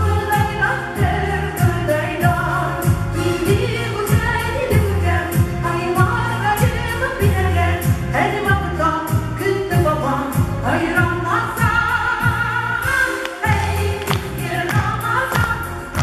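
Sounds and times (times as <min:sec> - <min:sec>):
women singing together: 0:00.0 - 0:08.8, 0:10.6 - 0:16.0
music with steady beat: 0:00.0 - 0:16.0.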